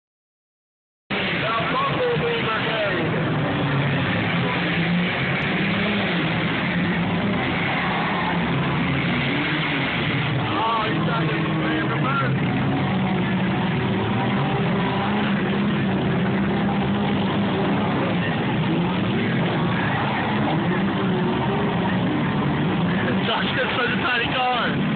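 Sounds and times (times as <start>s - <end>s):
car engines revving: 1.1s - 24.9s
crowd voices: 1.1s - 24.9s.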